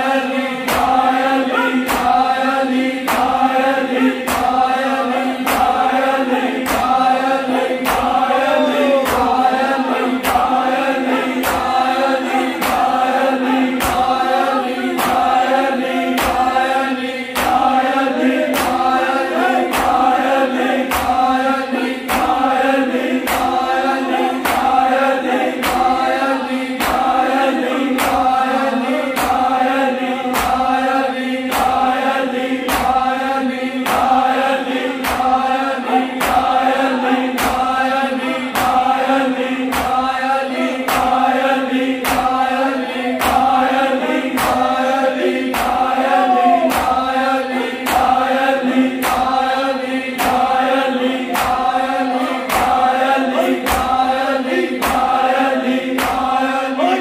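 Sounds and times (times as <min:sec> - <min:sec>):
men chanting a lament: 0:00.0 - 0:57.0
hands slapping bare chests: 0:00.7 - 0:01.2, 0:01.8 - 0:02.3, 0:03.0 - 0:03.5, 0:04.2 - 0:04.7, 0:05.4 - 0:05.9, 0:06.6 - 0:07.1, 0:07.8 - 0:08.3, 0:11.4 - 0:11.8, 0:12.6 - 0:13.0, 0:13.8 - 0:14.2, 0:15.0 - 0:15.4, 0:16.2 - 0:16.6, 0:17.3 - 0:17.8, 0:18.5 - 0:18.9, 0:19.7 - 0:20.0, 0:20.8 - 0:21.3, 0:22.1 - 0:22.5, 0:23.2 - 0:23.6, 0:24.4 - 0:24.8, 0:25.6 - 0:25.9, 0:26.8 - 0:27.2, 0:27.9 - 0:28.3, 0:29.2 - 0:29.6, 0:30.3 - 0:30.7, 0:31.5 - 0:31.8, 0:32.7 - 0:33.0, 0:33.8 - 0:34.2, 0:35.0 - 0:35.4, 0:36.2 - 0:36.6, 0:37.4 - 0:37.8, 0:38.5 - 0:39.0, 0:39.7 - 0:40.1, 0:40.9 - 0:41.2, 0:42.0 - 0:42.4, 0:43.2 - 0:43.6, 0:44.3 - 0:44.8, 0:45.5 - 0:46.0, 0:46.7 - 0:47.1, 0:47.8 - 0:48.2, 0:49.0 - 0:49.4, 0:50.2 - 0:50.6, 0:51.3 - 0:51.8, 0:52.5 - 0:52.9, 0:53.6 - 0:54.0, 0:54.8 - 0:55.2, 0:55.9 - 0:56.4.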